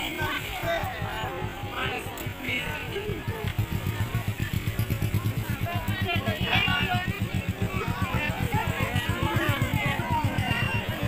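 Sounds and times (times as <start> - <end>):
engine idling: 0.0 - 11.0
people talking: 0.0 - 11.0.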